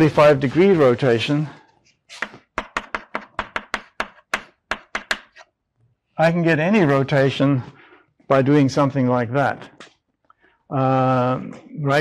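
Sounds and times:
chalk tapping on blackboard: 0:02.1 - 0:05.5.

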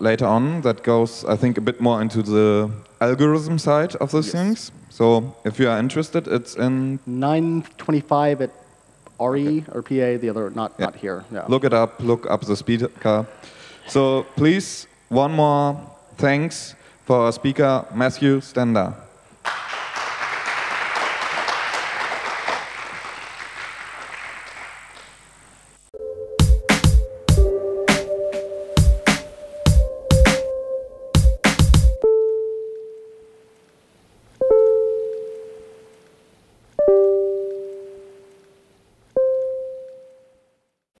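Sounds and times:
audience applause: 0:19.4 - 0:25.2.

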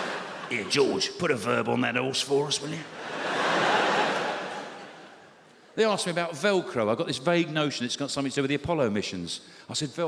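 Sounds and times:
large audience laughing: 0:00.0 - 0:01.0, 0:02.9 - 0:05.3.

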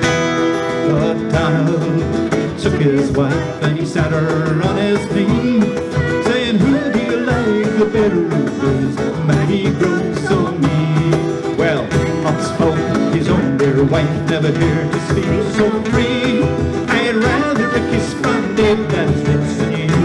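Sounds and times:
cajon beat: 0:00.0 - 0:20.0
strummed acoustic guitars: 0:00.0 - 0:20.0
woman singing: 0:02.5 - 0:11.2, 0:15.0 - 0:20.0.

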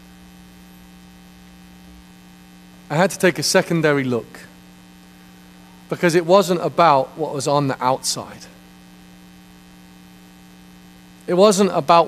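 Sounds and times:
electrical mains hum: 0:00.0 - 0:12.0
man's voice: 0:02.9 - 0:04.5, 0:05.9 - 0:08.6, 0:11.3 - 0:12.0.

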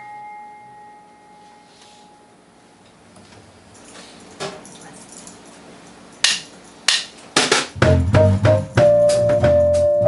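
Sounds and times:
piano high note ringing: 0:00.0 - 0:02.6.

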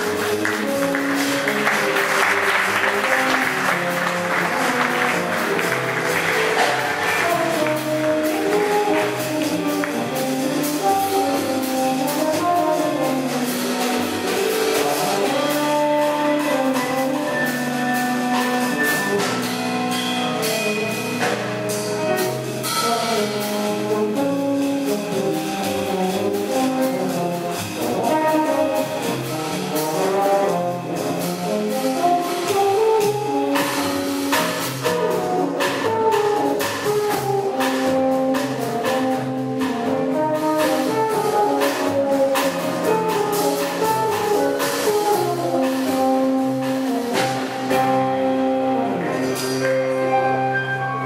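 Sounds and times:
double bass: 0:00.0 - 0:51.0
drums and cymbals: 0:00.0 - 0:51.0
french horn melody: 0:00.0 - 0:51.0
piano: 0:00.0 - 0:51.0.

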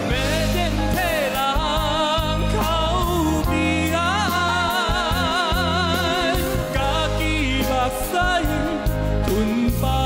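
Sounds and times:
band with steady bass: 0:00.0 - 0:10.0
man singing into microphone: 0:00.0 - 0:10.0.

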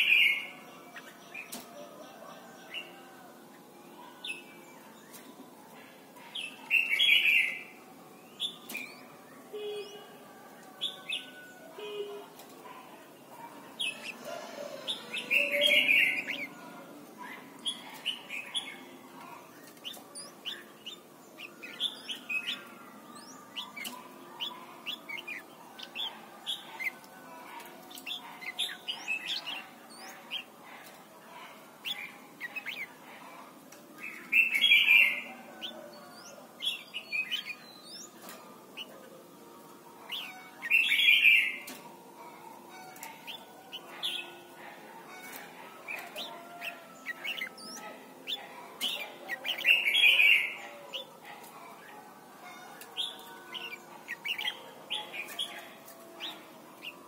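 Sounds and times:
bird song phrases: 0:00.0 - 0:57.0
bird chirps: 0:45.1 - 0:57.0.

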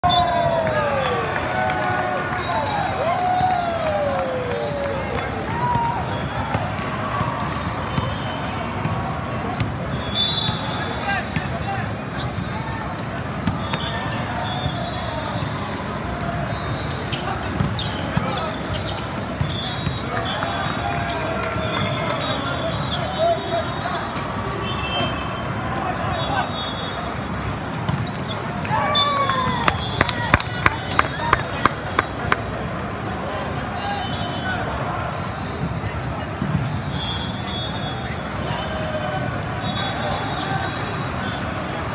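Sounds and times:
many overlapping voices: 0:00.0 - 0:41.9
ball bouncing on court: 0:05.7 - 0:09.9, 0:12.2 - 0:13.9, 0:17.1 - 0:20.8, 0:27.7 - 0:28.6, 0:29.4 - 0:32.4, 0:36.4 - 0:36.8.

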